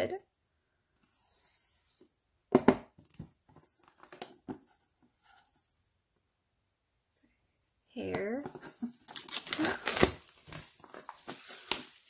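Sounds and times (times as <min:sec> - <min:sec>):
plastic shrink wrap crinkling: 0:08.4 - 0:12.0.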